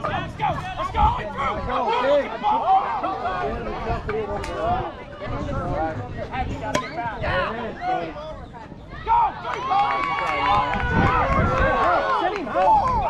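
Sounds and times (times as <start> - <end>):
crowd voices talking and calling: 0.0 - 13.0.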